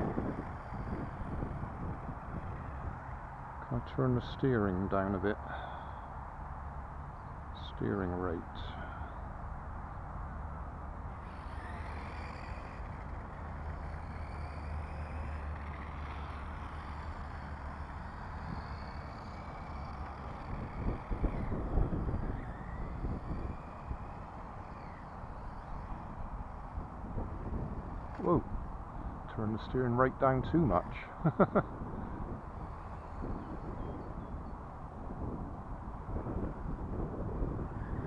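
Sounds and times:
rc car electric motor whining: 0.0 - 3.6, 8.7 - 38.0
wind on microphone: 0.0 - 4.3, 16.1 - 38.0.

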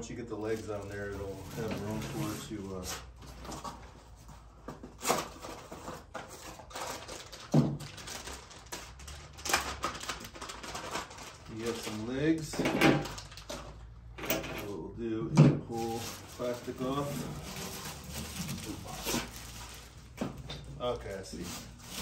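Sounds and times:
plastic wrap crinkling: 0.0 - 3.8, 5.1 - 13.9, 15.7 - 22.0.

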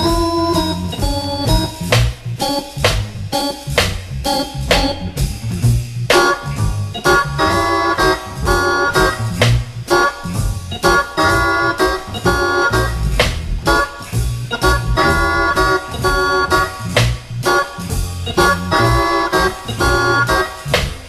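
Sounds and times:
drums: 0.0 - 21.0
organ block chords: 0.0 - 21.0.

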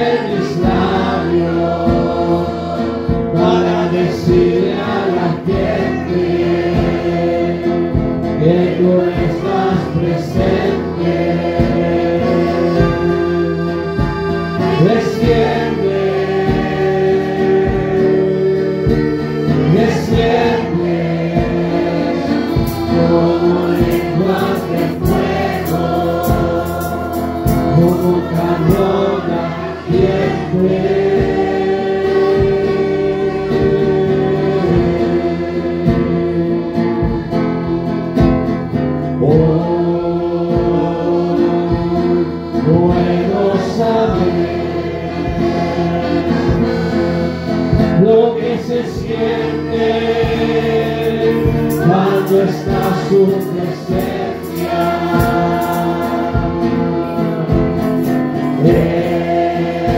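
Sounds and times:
man singing into a microphone: 0.0 - 38.1, 39.0 - 59.9
amplified accompaniment with low beat: 0.0 - 59.9
congregation singing: 0.0 - 59.9.

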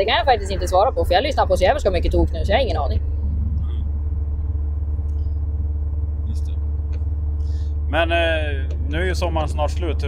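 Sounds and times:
engine and road drone in cabin: 0.0 - 10.0
steady two-pitch hum: 0.0 - 10.0.

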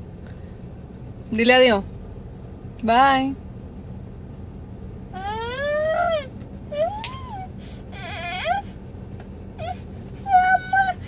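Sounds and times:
toddler whining: 5.2 - 8.8, 9.6 - 11.0.

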